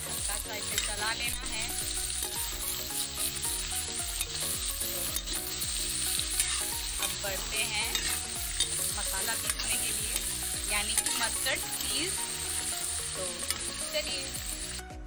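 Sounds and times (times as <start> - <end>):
pumpkin sizzling in oil: 0.0 - 15.0
metal spatula scraping pan: 4.2 - 12.2.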